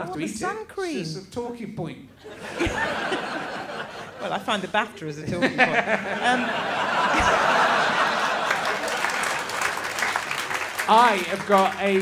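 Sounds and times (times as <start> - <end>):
audience laughing: 2.2 - 4.8, 5.4 - 10.4
audience applauding: 6.7 - 12.0.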